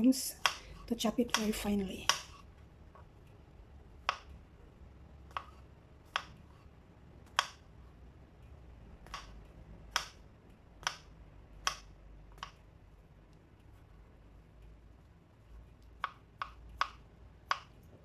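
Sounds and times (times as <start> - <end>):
knife chopping on cutting board: 0.3 - 2.4, 5.3 - 6.6.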